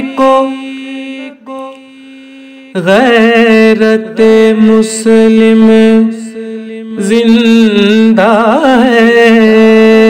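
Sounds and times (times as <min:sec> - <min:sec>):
man singing: 0:00.0 - 0:10.0.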